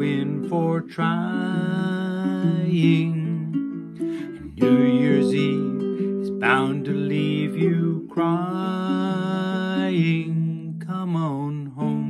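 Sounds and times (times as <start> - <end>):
strummed ukulele: 0.0 - 12.0.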